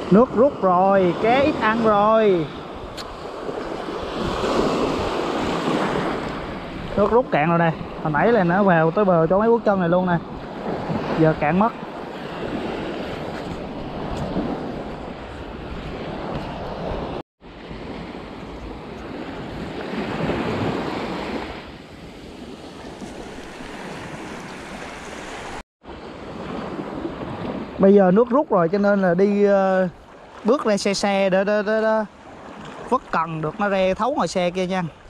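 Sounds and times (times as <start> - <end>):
wind buffeting microphone: 0.0 - 28.5
small waves washing on shore: 0.0 - 35.0.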